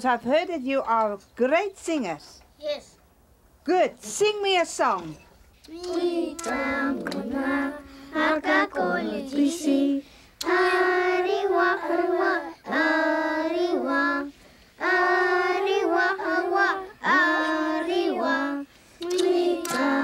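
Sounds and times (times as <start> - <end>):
children singing unaccompanied: 5.7 - 20.0.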